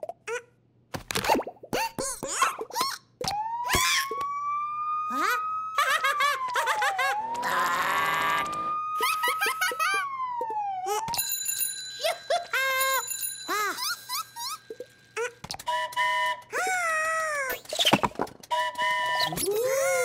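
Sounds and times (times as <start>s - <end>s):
cartoon police siren wail: 3.2s - 11.2s, 18.6s - 20.0s
ringing bell-like tones: 11.1s - 15.2s.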